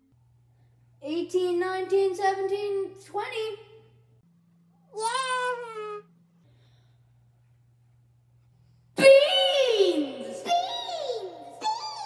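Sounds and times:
faint low hum: 0:00.0 - 0:12.0
girl shouting: 0:05.0 - 0:06.0, 0:09.0 - 0:12.0.

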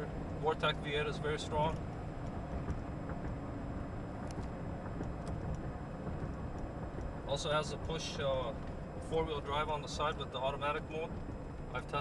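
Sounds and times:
engine and road rumble in cab: 0:00.0 - 0:12.0
faint ticks: 0:04.2 - 0:07.4.

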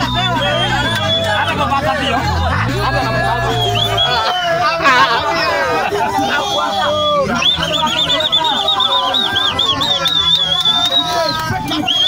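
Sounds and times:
young men shouting and chanting: 0:00.0 - 0:12.0.

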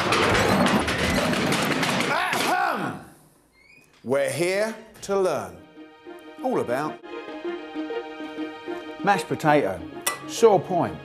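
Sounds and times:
wooden desks and chairs knocking: 0:00.0 - 0:02.9
music: 0:04.1 - 0:11.0.

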